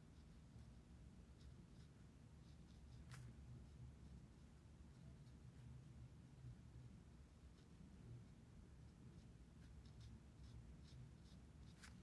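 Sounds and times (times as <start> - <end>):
brush strokes on paper: 0.0 - 12.0.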